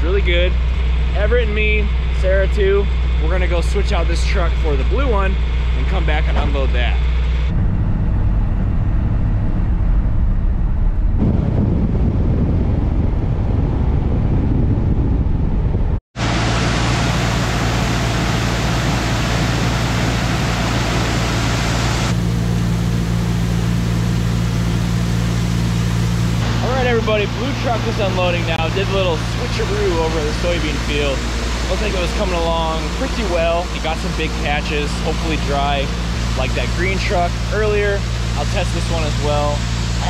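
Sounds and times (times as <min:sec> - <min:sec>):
machine hum: 0:00.0 - 0:40.0
truck engine rumble: 0:00.0 - 0:40.0.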